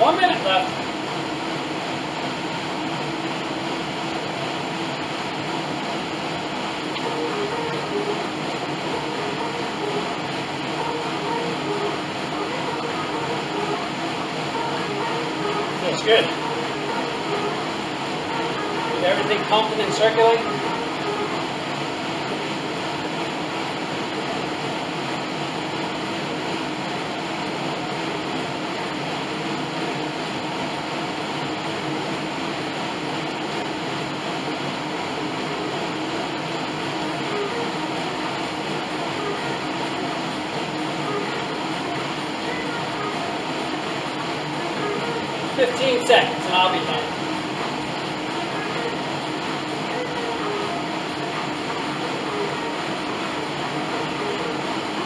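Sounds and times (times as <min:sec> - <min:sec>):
exercise machine fan whirring: 0:00.0 - 0:55.0
stepping strides rhythm: 0:00.0 - 0:55.0.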